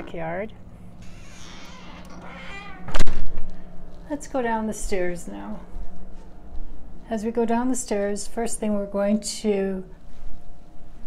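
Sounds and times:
door slamming: 0:01.0 - 0:03.3
door squeak: 0:01.0 - 0:03.3.

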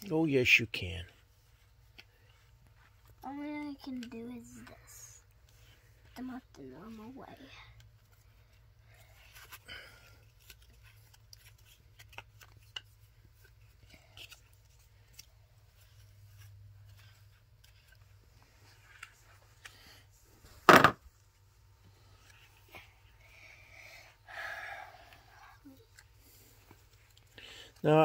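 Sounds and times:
cards tapping on carpet: 0:20.6 - 0:21.0
loud sharp thump: 0:20.7 - 0:21.0.

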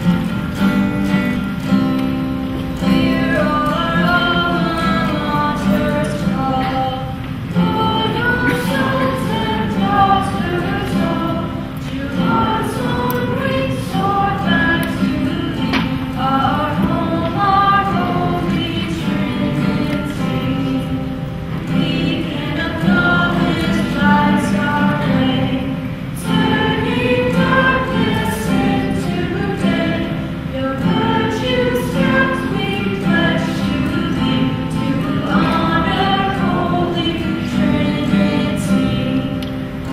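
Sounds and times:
choir singing: 0:02.8 - 0:39.9.

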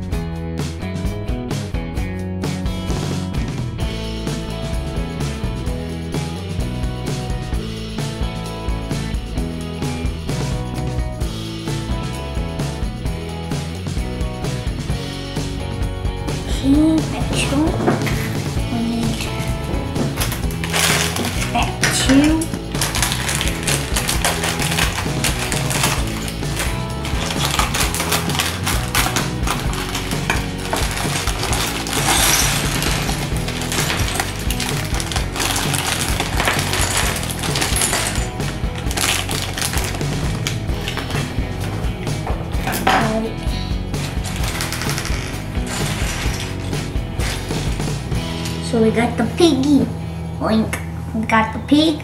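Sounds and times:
background music: 0:00.0 - 0:52.0
plastic bag rustling: 0:19.0 - 0:41.8, 0:44.0 - 0:48.4
plastic bricks clattering: 0:19.2 - 0:41.4, 0:44.0 - 0:47.9.

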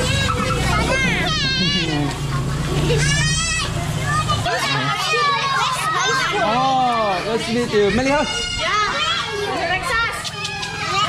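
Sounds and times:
children chattering and shouting: 0:00.0 - 0:11.0.

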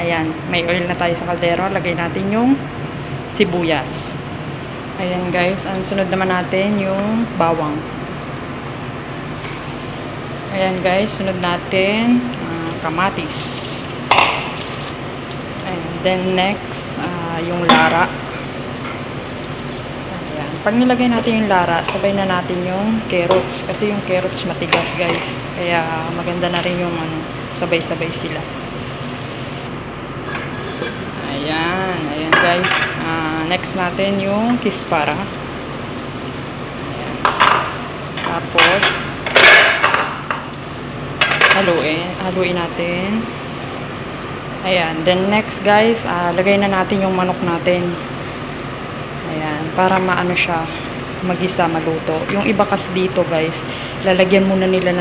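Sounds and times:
tomatoes sizzling in hot oil: 0:04.7 - 0:55.0.

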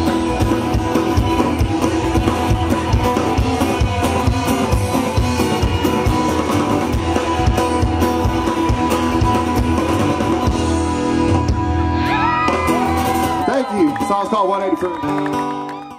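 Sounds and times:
acoustic guitar: 0:00.0 - 0:13.6, 0:15.0 - 0:15.9
drum kit steady beat: 0:00.0 - 0:14.2
bass guitar: 0:00.0 - 0:15.9
electric guitar: 0:00.0 - 0:15.9.

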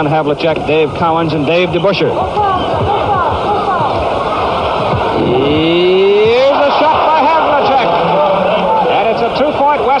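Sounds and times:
broadcast audio hiss: 0:00.0 - 0:05.2
long rising vocal sound: 0:05.1 - 0:06.5
short rising-and-falling vocal sounds: 0:05.2 - 0:06.4.

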